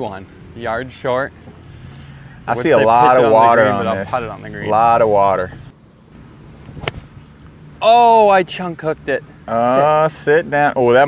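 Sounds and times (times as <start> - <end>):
club striking golf ball: 6.6 - 7.2.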